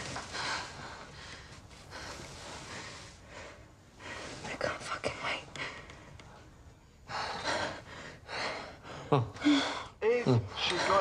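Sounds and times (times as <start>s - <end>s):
person breathing heavily: 7.1s - 10.0s.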